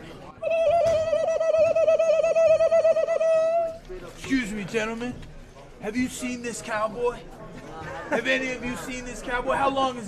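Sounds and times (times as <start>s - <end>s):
man whooping with hand patting mouth: 0.4s - 3.8s.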